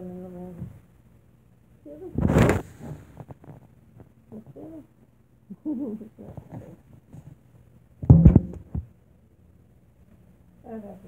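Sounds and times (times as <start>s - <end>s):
phone microphone handling noise: 2.2s - 4.1s.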